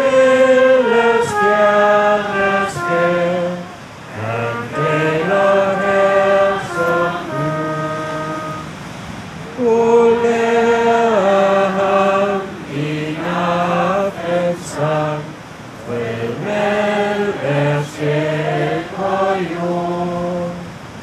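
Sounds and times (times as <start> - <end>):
voices singing a slow hymn: 0.0 - 21.0.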